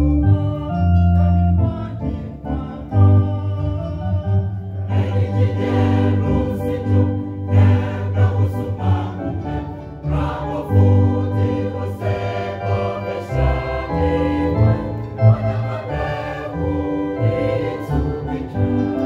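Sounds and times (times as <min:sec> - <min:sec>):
choir singing gospel in harmony: 0:00.0 - 0:19.0
instrumental accompaniment: 0:00.0 - 0:19.0.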